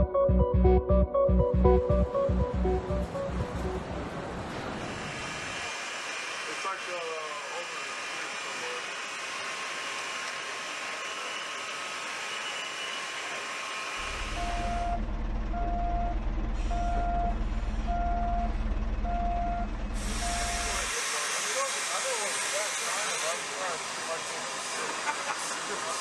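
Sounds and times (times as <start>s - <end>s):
heavy vehicle engine rumbling: 0.4s - 5.6s, 14.0s - 21.8s
reversing alarm beeps: 14.0s - 20.9s.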